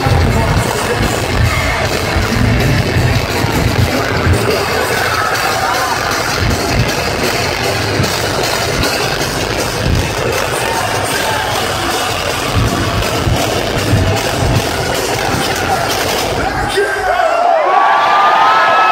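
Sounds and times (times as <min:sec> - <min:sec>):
live metal band playing: 0:00.0 - 0:17.0
crowd noise: 0:00.0 - 0:18.9.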